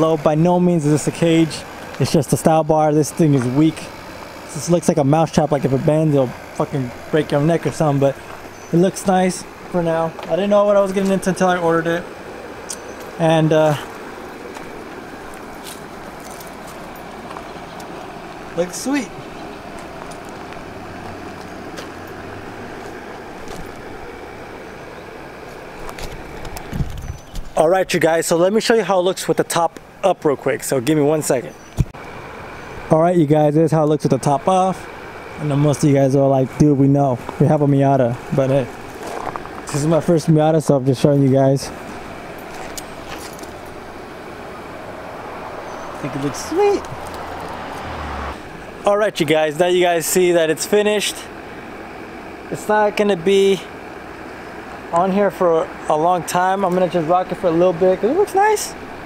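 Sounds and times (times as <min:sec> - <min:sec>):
low rumble with hiss: 0:00.0 - 0:59.0
outdoor background noise: 0:00.0 - 0:59.0.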